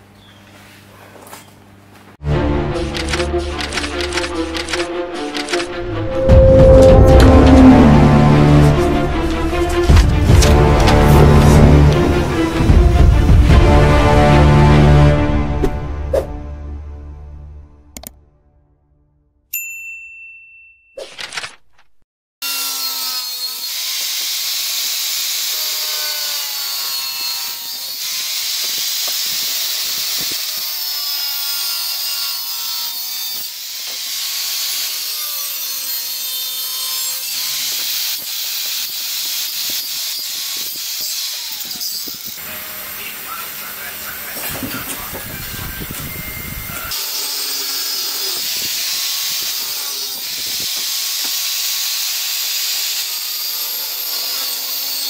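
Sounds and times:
angle grinder cutting metal: 2.7 - 13.5, 22.4 - 55.0.

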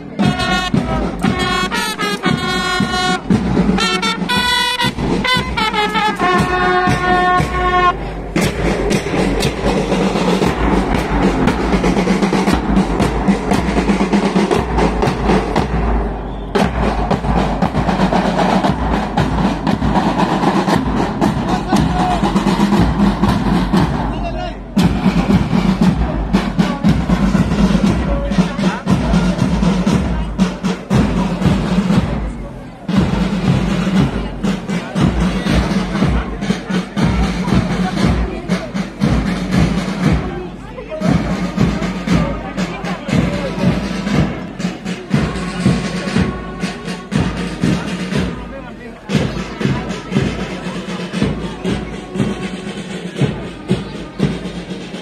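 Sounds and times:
bass drum beats: 0.0 - 55.0
trumpets holding notes: 0.2 - 8.5, 43.5 - 48.4, 51.1 - 53.5.

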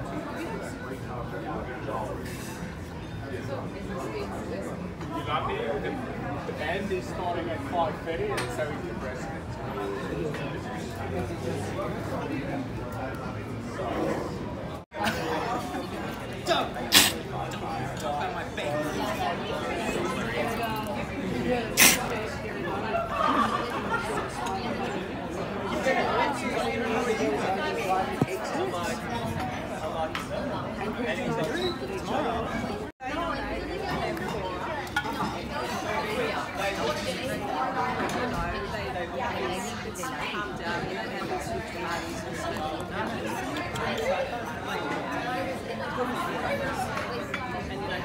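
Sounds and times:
people chattering: 0.0 - 48.0.

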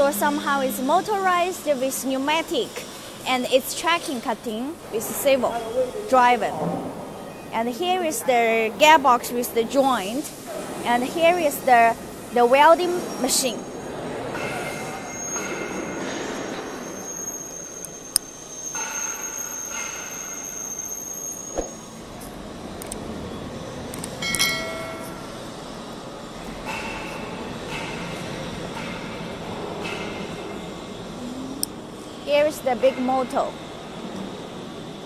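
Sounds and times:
brief squeal: 13.0 - 22.0.

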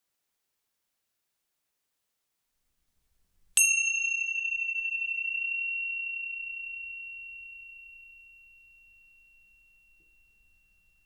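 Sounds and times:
small bell ringing: 3.6 - 11.0.

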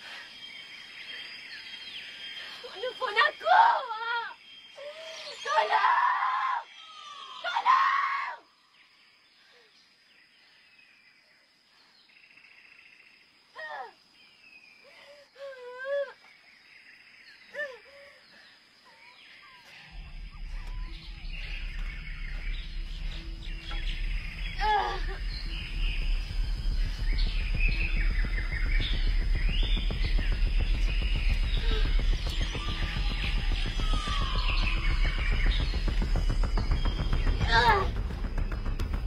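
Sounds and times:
music with low bass drone: 19.9 - 39.0.

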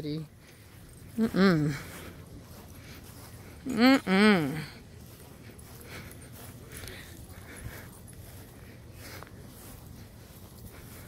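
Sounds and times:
footsteps on grass: 0.0 - 11.0.

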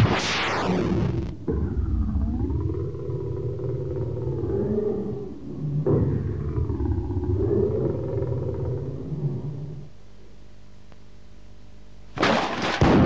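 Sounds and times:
steady low rumble: 0.0 - 10.1.

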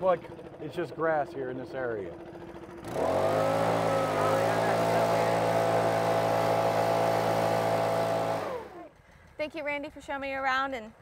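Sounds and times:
leaf blower running: 0.0 - 9.0.

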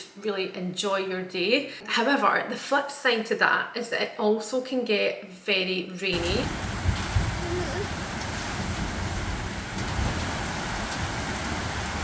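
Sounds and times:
heavy rain pouring: 6.2 - 12.0.

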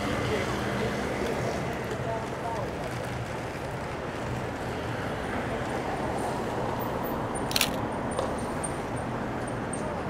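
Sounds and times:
city traffic rumble: 0.0 - 10.0.

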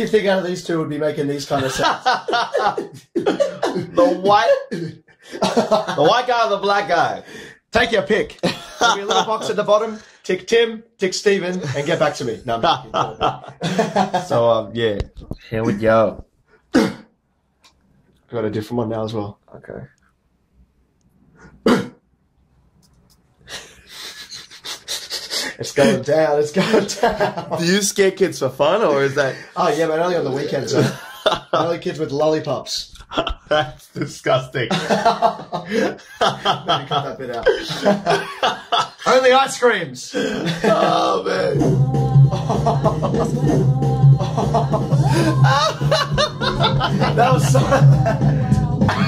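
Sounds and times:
man laughing hard: 1.6 - 6.2, 8.4 - 9.6, 11.6 - 14.3, 23.5 - 26.0, 26.6 - 27.7, 30.4 - 31.7, 34.7 - 39.1, 40.2 - 41.7, 42.3 - 49.0.

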